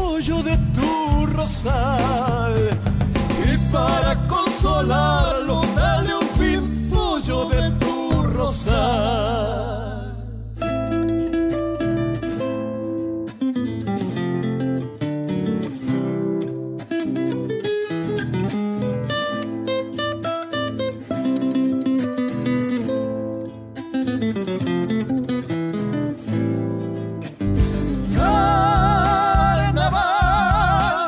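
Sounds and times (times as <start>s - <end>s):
acoustic guitars picking and strumming: 0.0s - 31.0s
low bass notes: 0.2s - 12.2s, 27.4s - 31.0s.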